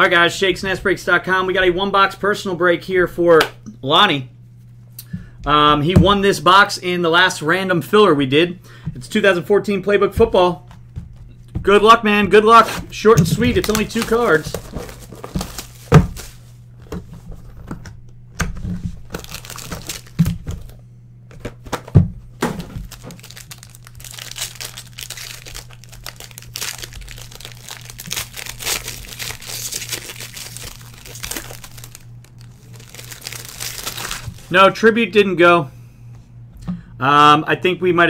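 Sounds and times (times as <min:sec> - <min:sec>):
cardboard thumps: 0:13.1 - 0:17.8, 0:21.3 - 0:23.4
wrapper crinkling and tearing: 0:13.3 - 0:16.5, 0:19.0 - 0:20.8, 0:22.5 - 0:34.6.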